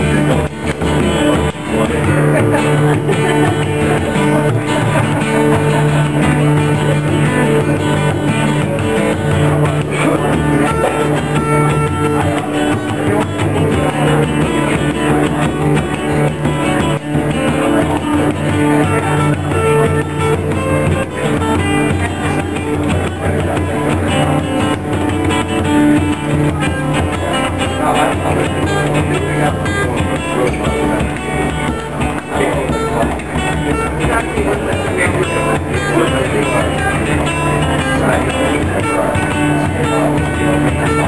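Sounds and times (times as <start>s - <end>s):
frame drum beating: 0.0s - 41.0s
jig played on guitar: 0.0s - 41.0s.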